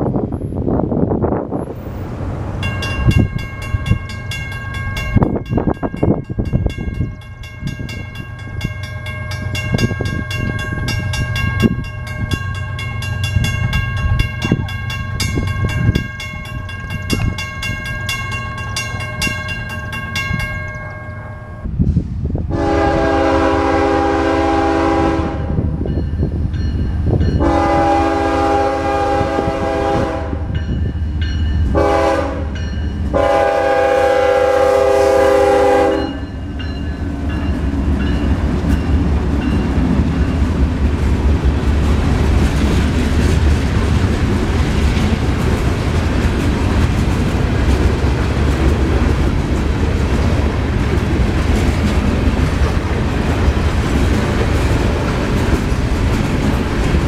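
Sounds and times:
locomotive rumble: 0.0 - 57.0
railroad crossing bell ringing: 2.6 - 21.7, 25.8 - 40.8
locomotive horn: 22.5 - 25.6, 27.4 - 30.5, 31.7 - 36.3.

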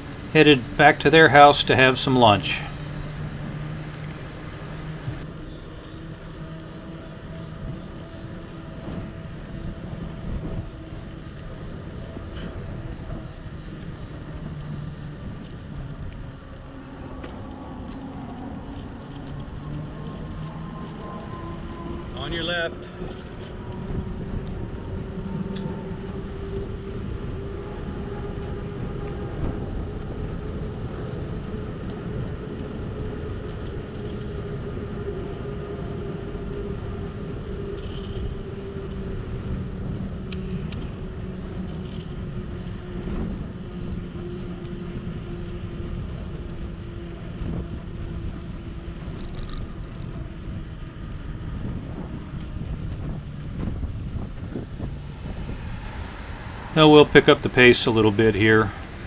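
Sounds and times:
bicycle tyres on pavement: 0.0 - 5.2, 54.4 - 59.0
steady hum: 0.0 - 5.2, 53.9 - 59.0
wind on microphone: 51.7 - 59.0.

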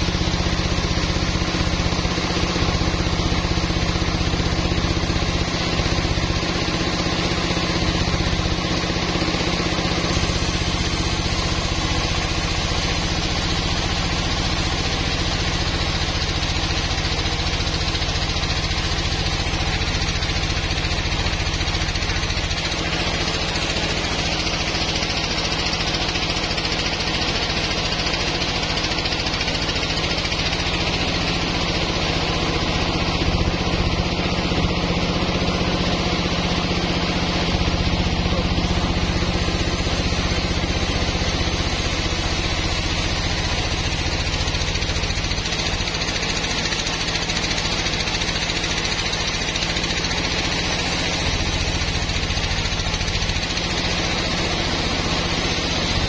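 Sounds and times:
low motor hum: 0.0 - 56.0
band saw cutting wood: 5.3 - 56.0.

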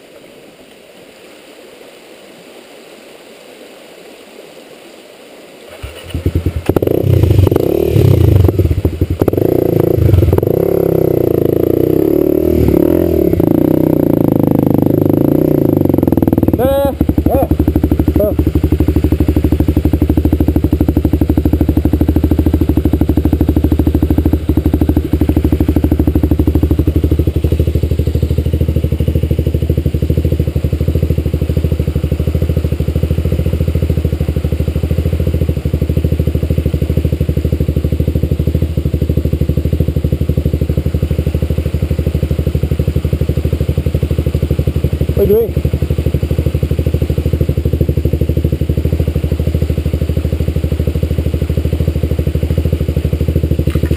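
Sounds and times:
dirt bike engine idling: 5.7 - 53.9.

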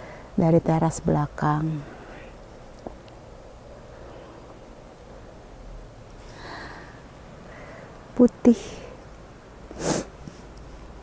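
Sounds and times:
person sniffing: 9.7 - 10.5.

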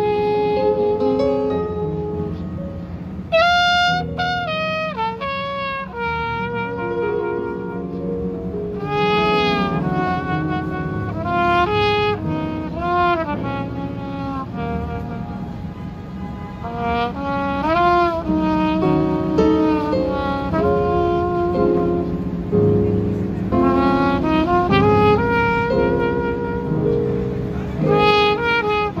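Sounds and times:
trumpet lead line: 0.0 - 2.6, 3.3 - 22.8, 23.5 - 29.0
jazz combo playing: 0.0 - 15.7, 16.6 - 29.0.

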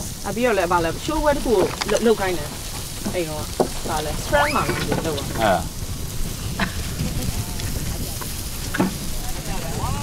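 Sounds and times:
broth simmering hiss: 0.0 - 10.0.

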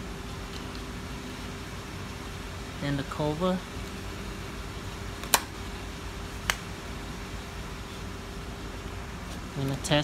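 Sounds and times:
steady background hum: 0.0 - 10.0.

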